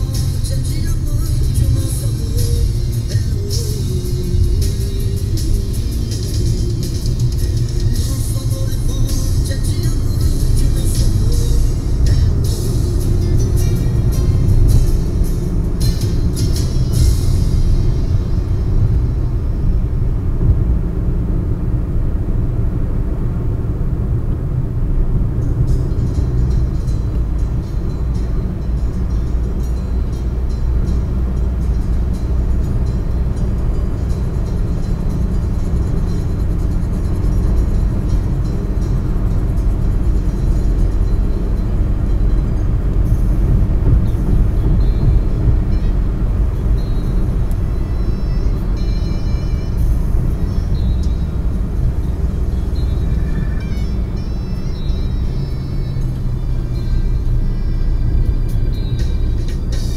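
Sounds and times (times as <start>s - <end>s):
car road rumble: 0.0s - 59.9s
faint music: 0.0s - 59.9s.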